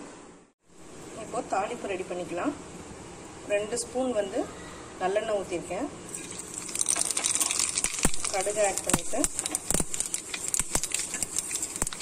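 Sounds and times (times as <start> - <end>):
hot oil sizzling in a pan: 6.1 - 12.0
oil popping and crackling: 6.1 - 12.0.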